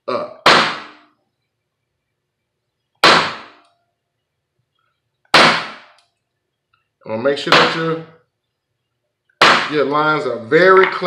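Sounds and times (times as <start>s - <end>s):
mallet striking stamp on leather: 0.5s - 1.0s.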